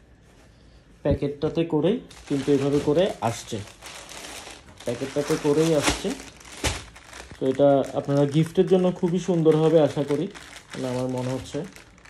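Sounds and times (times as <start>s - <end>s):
man talking: 1.0s - 3.8s, 4.8s - 6.3s, 7.4s - 11.8s
plastic bag crinkling: 2.1s - 12.0s.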